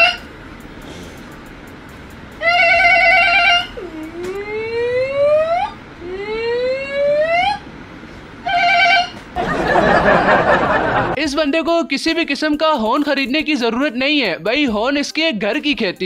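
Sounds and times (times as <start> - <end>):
man imitating vehicle sounds: 0.8 - 1.4, 3.8 - 5.4.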